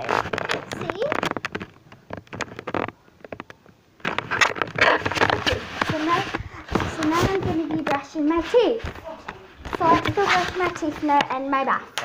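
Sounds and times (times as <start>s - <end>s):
camera handling knocks and rubbing: 0.1s - 9.0s.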